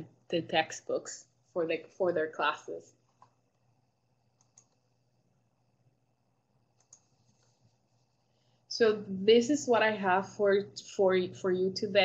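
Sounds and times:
faint clicks: 0:04.4 - 0:04.8, 0:06.7 - 0:07.6.

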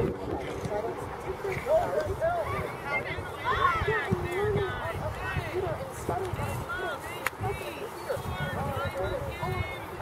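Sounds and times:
voices calling and shouting: 0:00.0 - 0:10.0.

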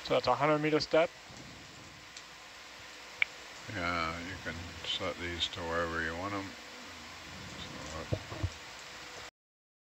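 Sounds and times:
low audio feed hiss: 0:00.0 - 0:09.3.

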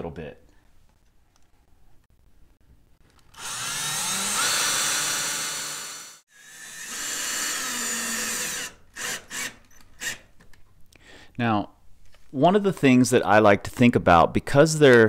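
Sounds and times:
cordless drill driving screws: 0:03.3 - 0:10.3.

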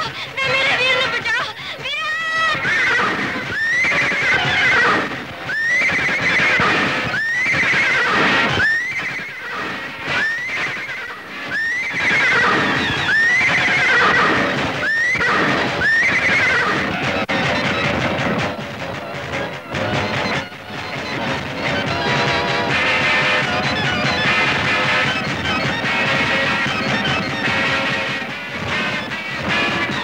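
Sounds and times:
horse neighing: 0:00.0 - 0:17.2.

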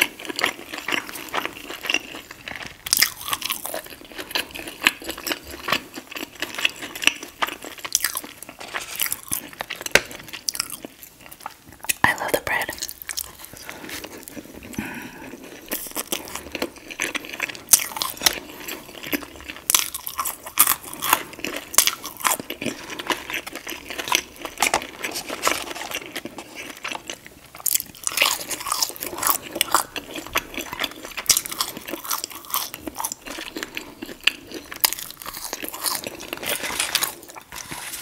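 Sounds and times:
chewing and crunching food: 0:00.0 - 0:38.0.

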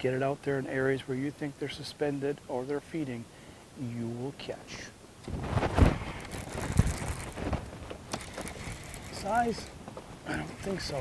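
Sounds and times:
wind buffeting microphone: 0:05.2 - 0:11.0.

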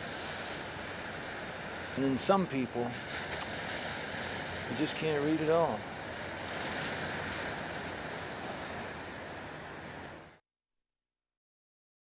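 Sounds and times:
ocean surf washing on beach: 0:00.0 - 0:10.4.

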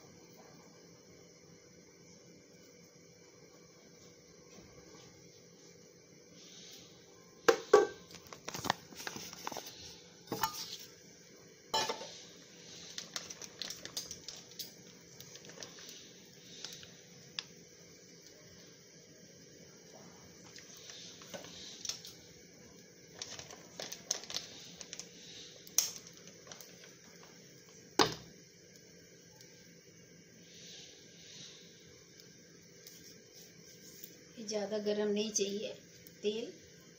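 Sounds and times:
faint steady hiss: 0:00.0 - 0:36.9
metal pots and utensils clattering: 0:10.3 - 0:10.8, 0:11.8 - 0:12.1.

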